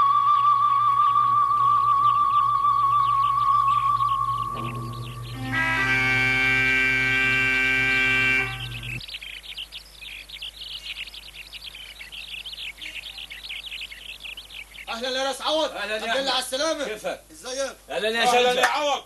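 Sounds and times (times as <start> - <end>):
small birds chirping: 0.0 - 19.0
background music chord: 4.2 - 9.0.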